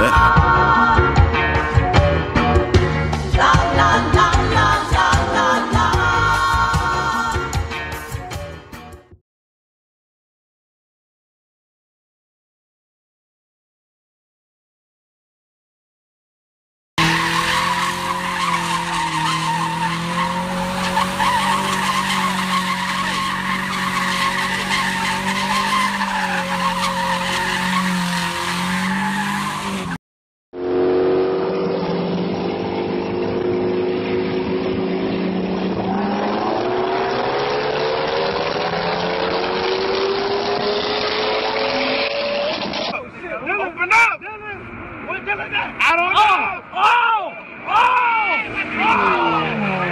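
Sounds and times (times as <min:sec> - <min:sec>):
car engine accelerating hard: 0:17.0 - 0:30.0, 0:30.6 - 0:42.9, 0:48.4 - 0:49.9
steady pitched engine or tyre squeal: 0:17.0 - 0:30.0, 0:47.4 - 0:49.9.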